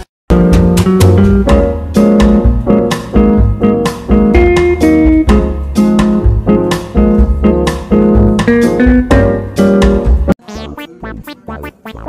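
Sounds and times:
heavy bass beat: 10.4 - 12.0
plucked guitar-like melody: 10.4 - 12.0.

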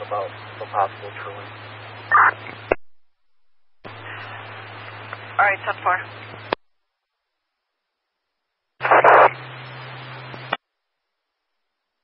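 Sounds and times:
radio hiss over low hum: 0.0 - 6.6, 8.8 - 10.6
radio static burst: 0.0 - 6.6, 8.8 - 10.6
radio click: 8.8 - 9.4, 10.3 - 10.6.

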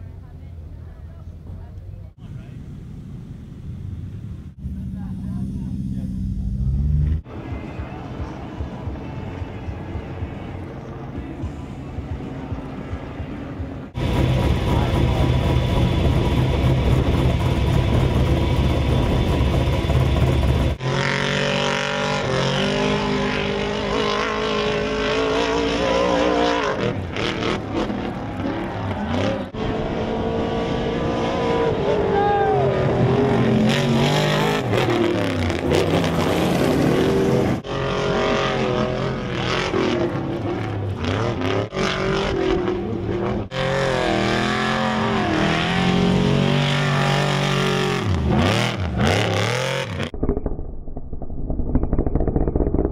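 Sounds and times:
truck engines revving: 0.0 - 50.2.

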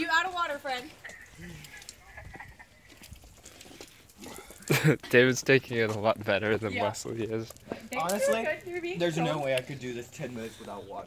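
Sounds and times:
person laughing: 1.0 - 3.0, 4.6 - 5.2.

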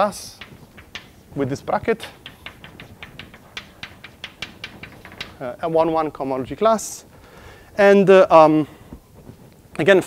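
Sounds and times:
chalk tapping on blackboard: 0.4 - 6.0.

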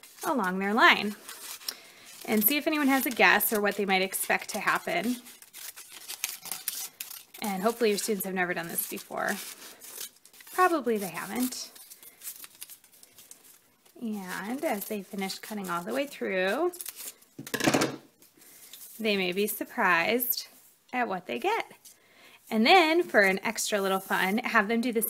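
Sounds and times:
scissors snipping paper: 0.0 - 13.6
paper rustling: 0.0 - 17.3.

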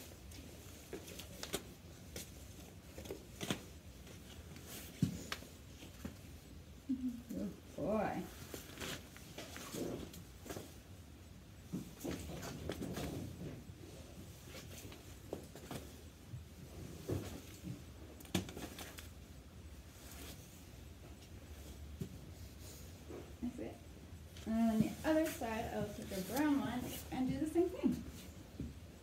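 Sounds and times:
rope rustling: 0.0 - 6.6, 7.8 - 23.5.

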